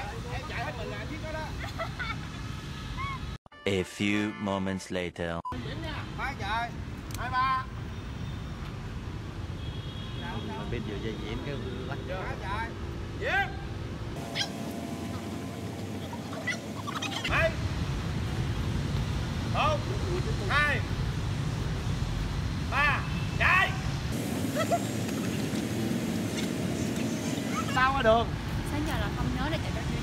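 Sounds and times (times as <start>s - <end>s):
low rumble of city traffic: 0.0s - 3.4s, 5.6s - 30.0s.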